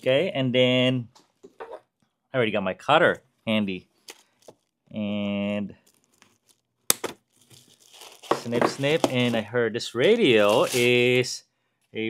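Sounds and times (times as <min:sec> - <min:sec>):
packaging rustling: 0:05.8 - 0:09.4, 0:10.0 - 0:11.2.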